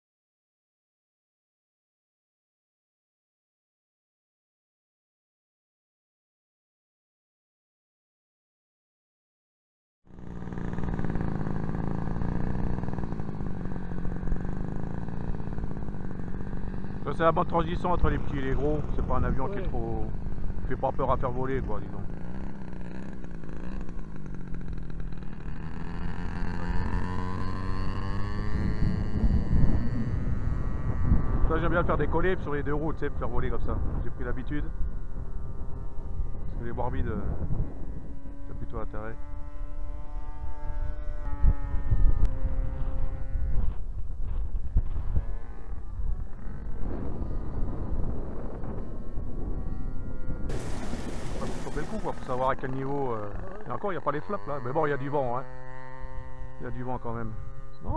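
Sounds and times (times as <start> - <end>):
model plane motor running: 10.1 - 57.9
wind buffeting microphone: 28.0 - 38.6, 40.2 - 53.5.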